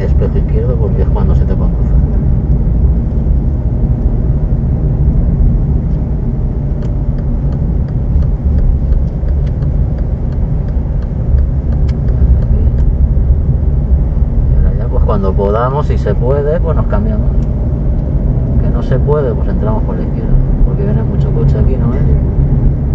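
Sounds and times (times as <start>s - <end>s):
car engine and tyre rumble: 0.0s - 22.9s.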